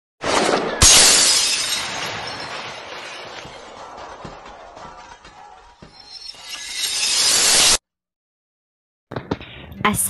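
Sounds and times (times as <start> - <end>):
glass breaking: 0.2 - 7.8.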